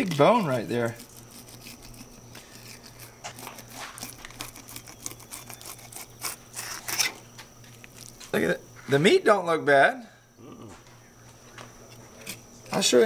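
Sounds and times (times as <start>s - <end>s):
knife scraping along fish: 0.0s - 7.2s.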